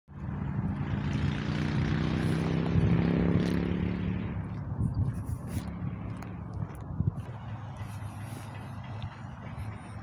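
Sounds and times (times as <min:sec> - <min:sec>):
engine running with low hum: 0:00.1 - 0:10.0.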